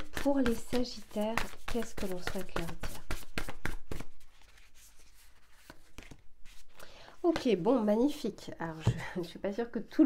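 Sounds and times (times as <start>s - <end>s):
cards being shuffled: 0.0s - 7.4s.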